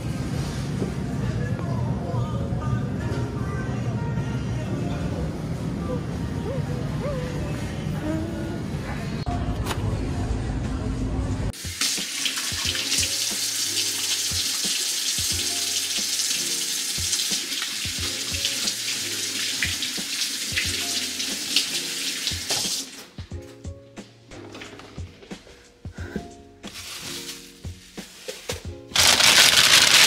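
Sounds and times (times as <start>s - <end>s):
background music with beat: 11.6s - 19.0s, 19.6s - 21.0s, 21.7s - 29.0s
faucet running into steel sink: 11.6s - 22.9s.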